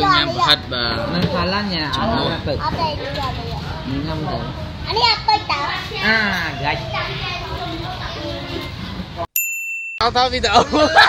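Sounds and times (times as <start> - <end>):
indistinct chatter: 0.0 - 9.3
bell-like ding: 9.4 - 10.0.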